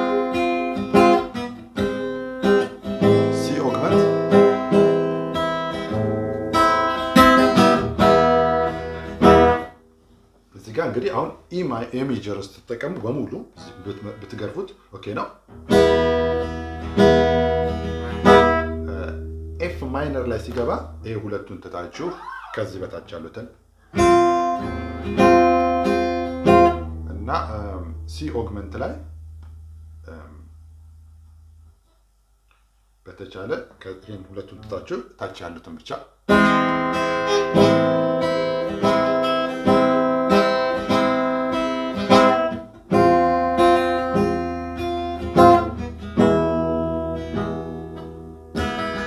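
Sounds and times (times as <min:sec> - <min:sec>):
acoustic guitar chords strummed: 0:00.0 - 0:09.9, 0:15.5 - 0:22.8, 0:24.0 - 0:30.7, 0:36.3 - 0:49.0.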